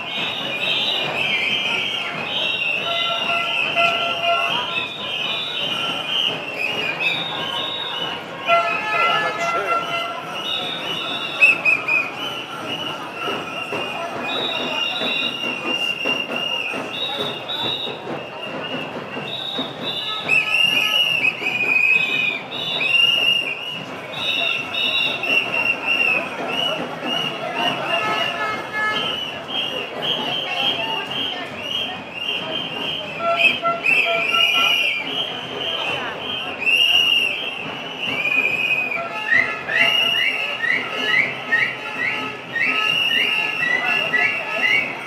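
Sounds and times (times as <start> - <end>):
crowd noise: 0.0 - 45.0
shrill whistle blasts: 0.0 - 45.0.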